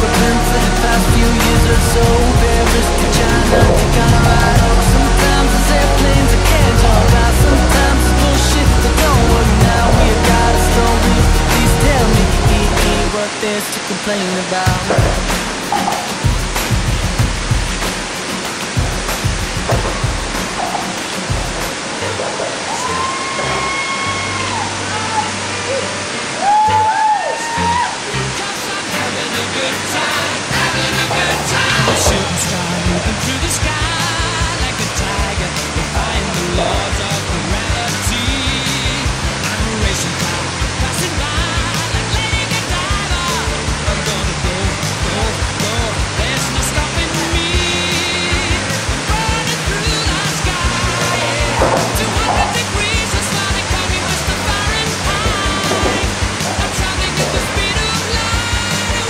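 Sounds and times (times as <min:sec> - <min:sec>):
music with regular beat: 0:00.0 - 0:13.1, 0:14.7 - 0:22.0, 0:30.3 - 0:59.0
water rushing over spillway: 0:00.0 - 0:59.0.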